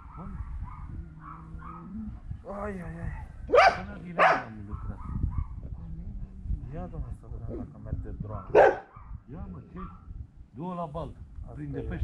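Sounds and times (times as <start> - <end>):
dog barking: 0.0 - 2.0, 3.5 - 5.6, 8.4 - 9.2, 9.8 - 10.1.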